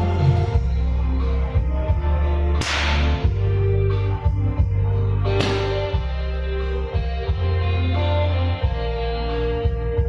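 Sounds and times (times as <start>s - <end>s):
instrumental karaoke music: 0.0s - 10.0s
confetti cannon firing: 2.6s - 3.2s.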